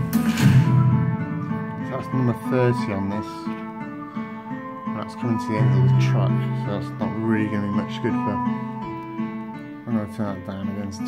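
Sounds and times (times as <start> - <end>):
music with beat and deep bass: 0.0 - 9.8.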